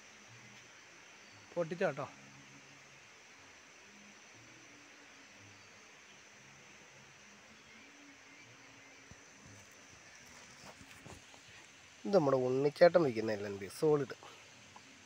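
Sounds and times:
faint background hiss: 0:00.0 - 0:15.0.

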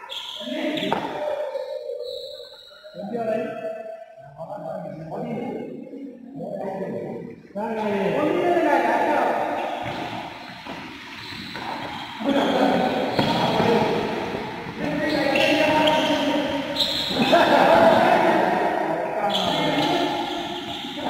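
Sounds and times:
voices echoing in hall: 0:00.0 - 0:21.0.

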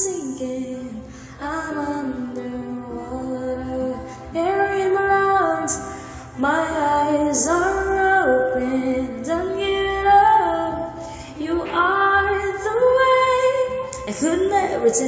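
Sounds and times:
woman singing a pop ballad: 0:00.0 - 0:15.0.

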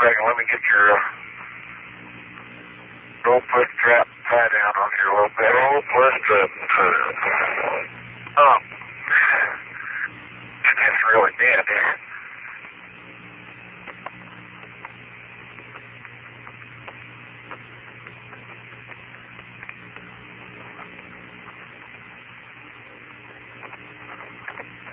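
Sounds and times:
man speaking over radio: 0:00.0 - 0:01.3, 0:03.2 - 0:12.6
low hum: 0:00.0 - 0:24.9
radio hiss: 0:00.0 - 0:24.9
faint clicks: 0:12.5 - 0:24.9.

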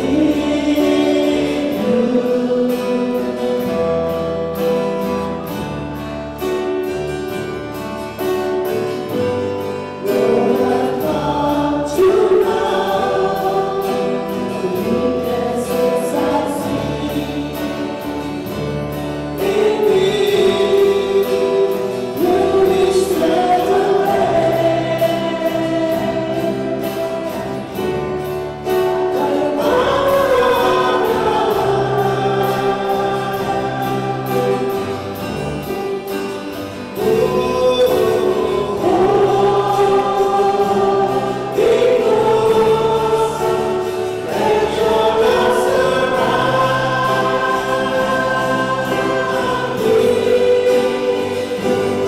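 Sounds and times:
choir singing a hymn: 0:00.0 - 0:52.0.

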